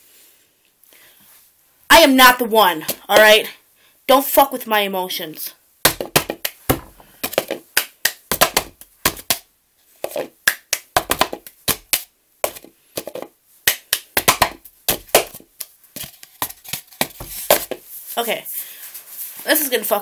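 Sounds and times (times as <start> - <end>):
hand claps: 7.5 - 9.4, 10.5 - 12.1, 13.7 - 15.7.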